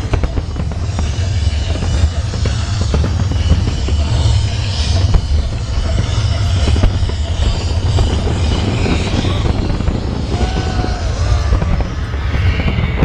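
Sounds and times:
fireworks bursting: 0.0s - 13.0s.

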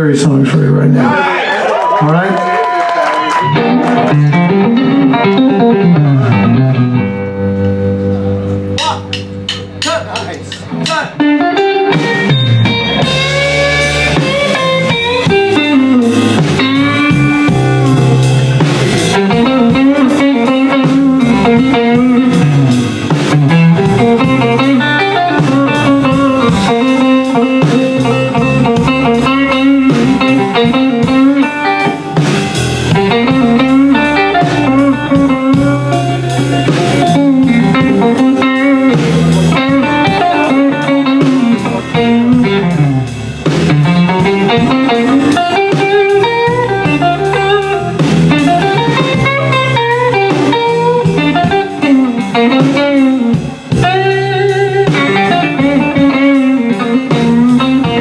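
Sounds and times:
bass guitar: 0.0s - 58.0s
drum kit: 0.0s - 58.0s
electric guitar lead: 0.0s - 58.0s.

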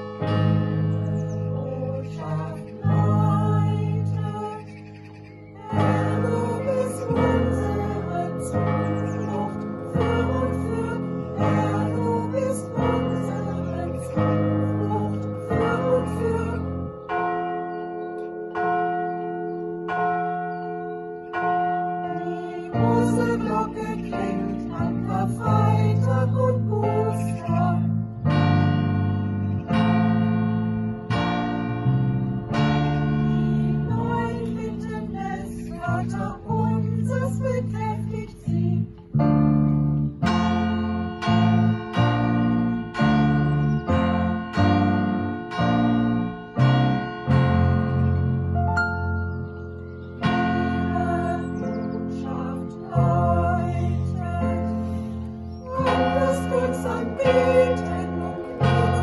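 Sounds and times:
church bells ringing: 0.0s - 59.0s
electric piano chords: 0.0s - 59.0s
band low notes: 22.8s - 59.0s.

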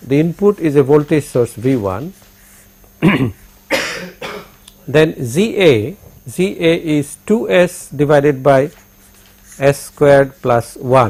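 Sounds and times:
man coughing: 3.0s - 4.6s.

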